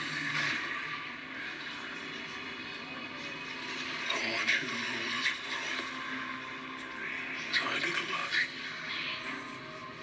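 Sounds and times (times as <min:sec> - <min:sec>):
droning soundtrack through tv speakers: 0:00.0 - 0:10.0.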